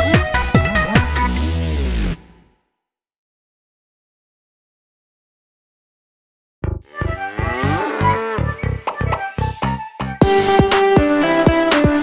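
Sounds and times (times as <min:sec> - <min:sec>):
cartoon cow mooing: 0:06.9 - 0:08.8
children's song beat: 0:08.5 - 0:12.0.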